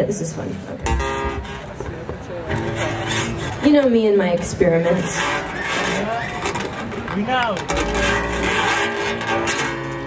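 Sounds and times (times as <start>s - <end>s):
murmur of audience voices: 0.0s - 10.0s.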